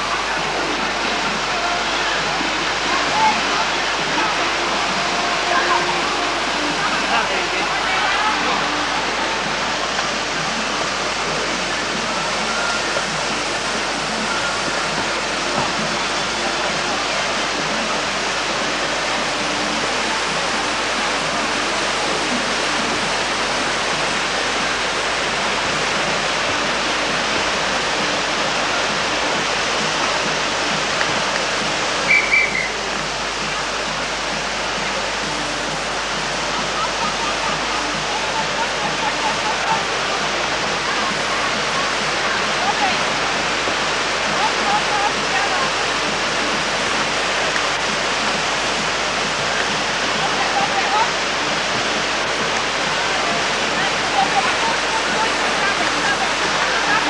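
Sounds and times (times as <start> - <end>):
faint voices: 0.0 - 57.0
rushing whitewater: 0.0 - 57.0
high-pitched chirp: 32.1 - 32.8.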